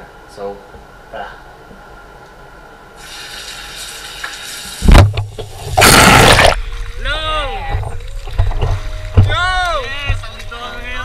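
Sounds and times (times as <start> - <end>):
loud thump: 4.8 - 6.6.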